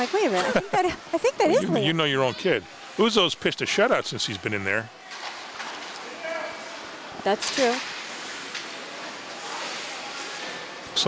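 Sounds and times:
skate and game noise: 5.0s - 11.0s.

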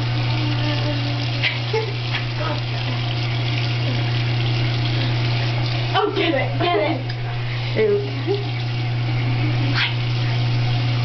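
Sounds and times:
water running from sink tap: 0.0s - 11.0s.

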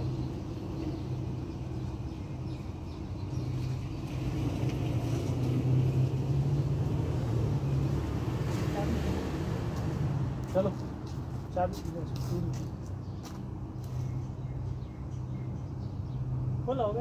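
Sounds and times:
vehicle engine humming: 0.0s - 14.8s.

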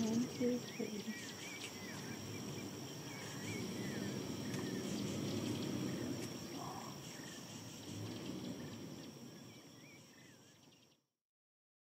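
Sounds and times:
bird calls: 0.0s - 11.0s
high insect drone: 0.0s - 11.0s
low outdoor background noise: 0.0s - 11.1s.

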